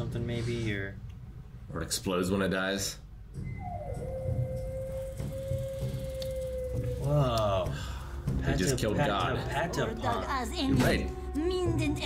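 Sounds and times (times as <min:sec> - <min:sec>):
long held sliding note: 0:03.6 - 0:07.7.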